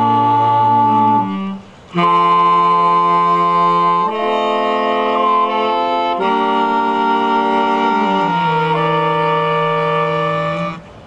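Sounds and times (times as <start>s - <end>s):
saxophone quartet held chords: 0.0s - 11.0s.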